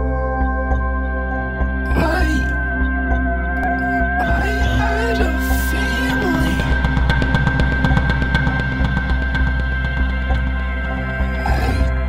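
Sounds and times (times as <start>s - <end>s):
deep bass: 0.0s - 12.0s
fast drum beat: 4.2s - 10.7s.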